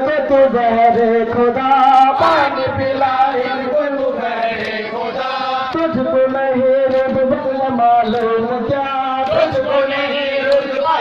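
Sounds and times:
male voices chanting a lament: 0:00.0 - 0:11.0.

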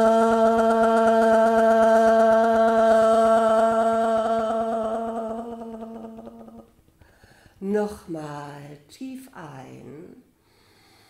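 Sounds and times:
woman intoning aah: 0:00.0 - 0:06.7.

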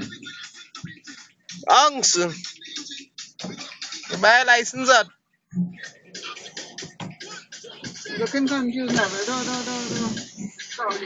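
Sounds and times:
person talking: 0:01.6 - 0:02.4, 0:04.1 - 0:05.1, 0:08.1 - 0:11.0.

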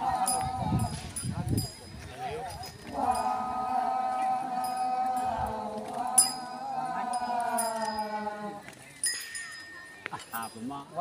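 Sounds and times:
group chanting: 0:00.0 - 0:01.0, 0:02.9 - 0:08.7.

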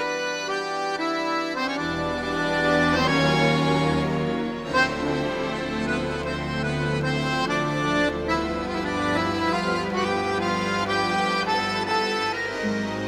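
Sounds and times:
slow reedy instrumental melody: 0:00.0 - 0:13.0.

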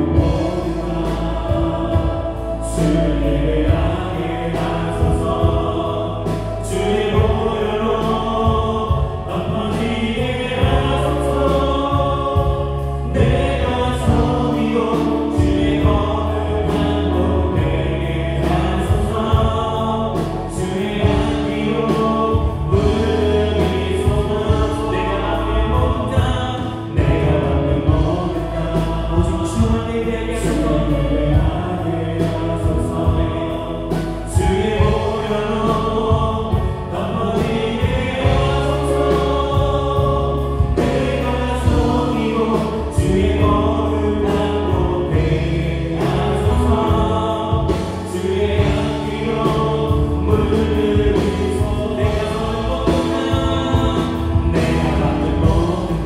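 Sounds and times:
bass guitar: 0:00.0 - 0:56.0
drum kit with cymbals: 0:00.0 - 0:56.0
keyboards: 0:00.0 - 0:56.0
person singing: 0:00.0 - 0:56.0.

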